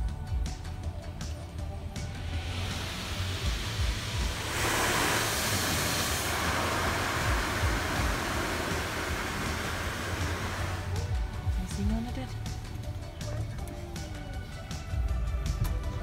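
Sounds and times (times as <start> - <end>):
water jets spraying on car: 1.1 - 13.4.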